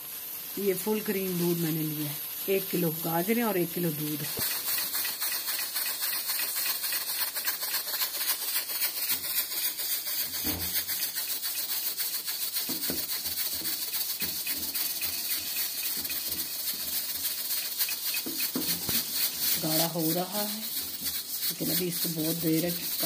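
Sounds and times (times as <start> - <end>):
milk boiling in pot: 0.0 - 23.0
pressure cooker hissing: 0.0 - 23.0.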